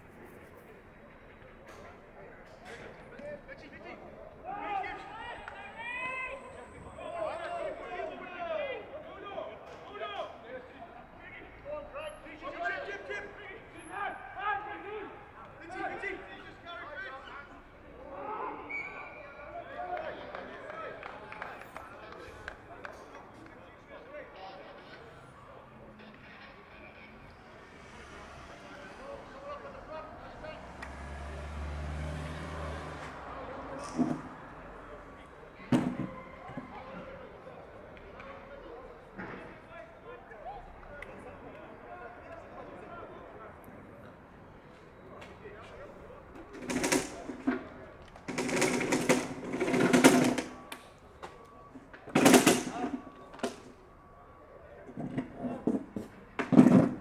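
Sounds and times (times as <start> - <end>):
crowd voices calling and talking: 0.0 - 57.0.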